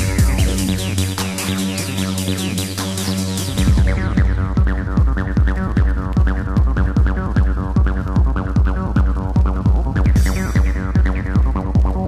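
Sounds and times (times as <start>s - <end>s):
fast kick drum: 0.0s - 2.4s, 3.1s - 12.0s.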